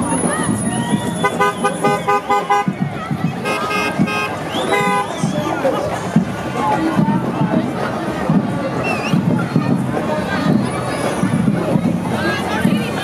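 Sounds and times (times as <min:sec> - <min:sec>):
crowd chatter: 0:00.0 - 0:13.0
vehicle horn honking: 0:01.2 - 0:02.7, 0:03.4 - 0:05.1.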